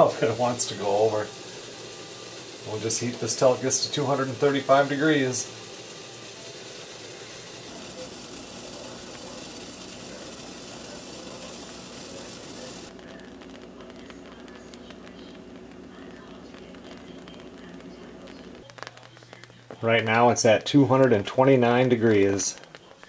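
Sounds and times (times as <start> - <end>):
syrup bubbling in a pot: 0.0 - 23.0
faint small pops: 16.8 - 19.8, 22.5 - 23.0.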